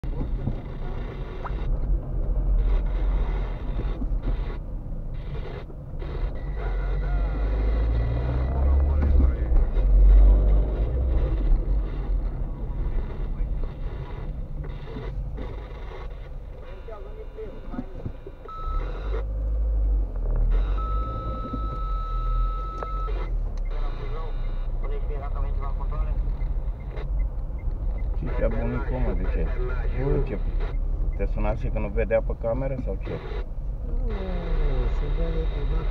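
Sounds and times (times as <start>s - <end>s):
car engine and road rumble: 0.0s - 35.9s
steady beep: 18.4s - 19.2s, 20.6s - 25.8s.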